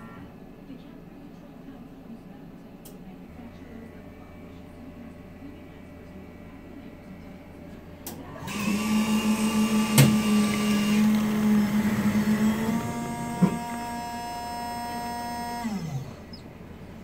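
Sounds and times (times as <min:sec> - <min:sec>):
coffee machine humming: 0:03.0 - 0:17.0.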